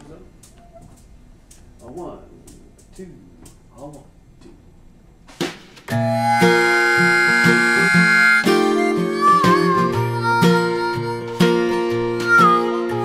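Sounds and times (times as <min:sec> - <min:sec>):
acoustic guitar accompaniment: 0:05.3 - 0:13.0
harmonica playing blues: 0:05.9 - 0:13.0.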